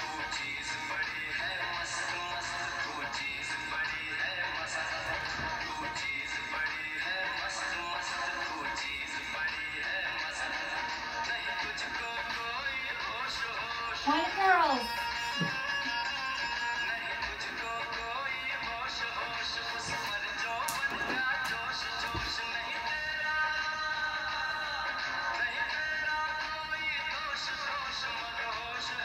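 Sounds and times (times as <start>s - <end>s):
recorded song with singing: 0.0s - 29.0s.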